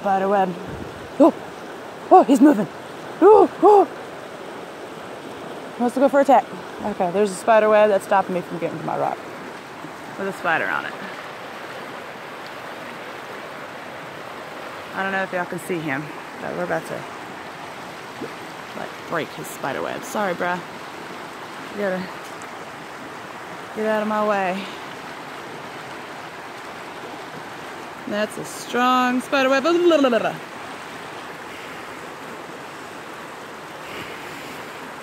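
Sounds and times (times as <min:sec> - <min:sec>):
water rushing over rocks: 0:00.0 - 0:35.0.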